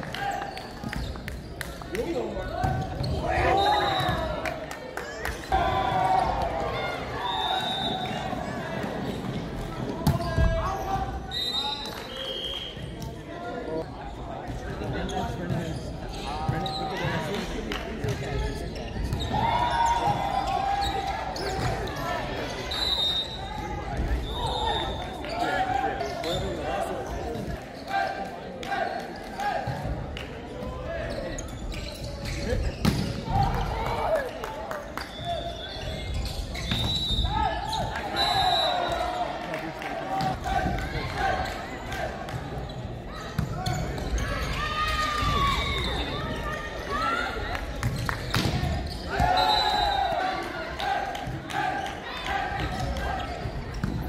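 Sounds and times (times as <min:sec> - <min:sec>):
shoes squeaking on court: 0:31.1 - 0:33.1.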